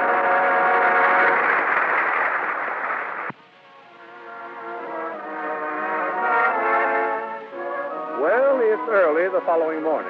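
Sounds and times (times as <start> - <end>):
orchestral music: 0.0 - 1.6, 3.8 - 10.0.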